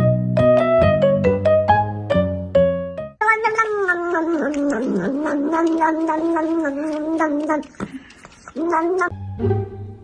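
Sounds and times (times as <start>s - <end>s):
piano music: 0.0s - 3.2s, 9.1s - 10.0s.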